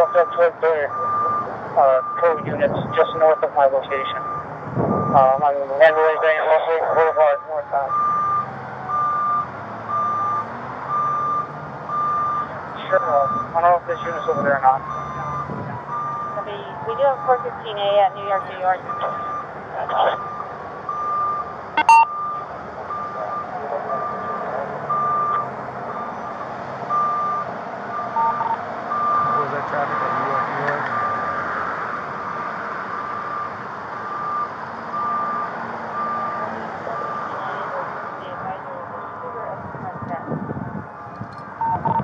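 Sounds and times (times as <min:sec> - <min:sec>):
reversing alarm beeping: 0:00.0 - 0:31.4, 0:33.0 - 0:39.2, 0:40.0 - 0:42.0.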